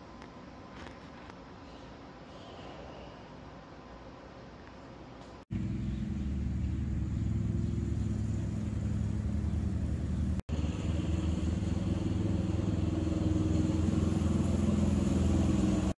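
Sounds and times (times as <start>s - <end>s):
engine running steadily: 5.2s - 16.0s.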